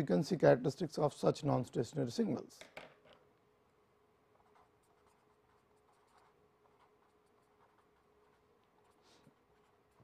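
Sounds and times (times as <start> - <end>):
faint steady hum: 0.0 - 10.0
marker scratching on paper: 4.3 - 10.0.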